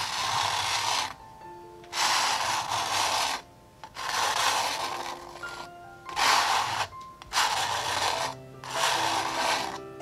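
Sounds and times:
palette knife scraping paint: 0:00.0 - 0:01.2, 0:01.9 - 0:10.0.

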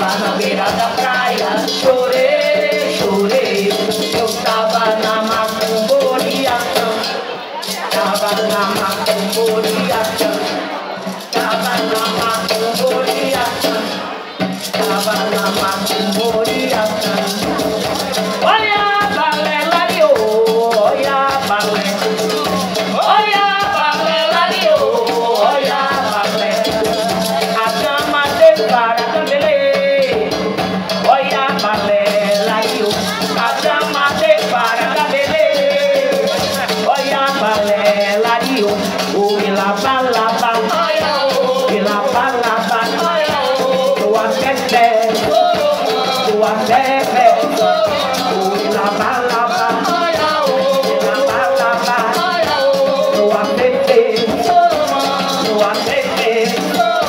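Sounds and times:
hand drum and cajon playing: 0:00.0 - 0:57.0
person singing: 0:00.0 - 0:57.0
rattling shaker: 0:00.0 - 0:57.0.

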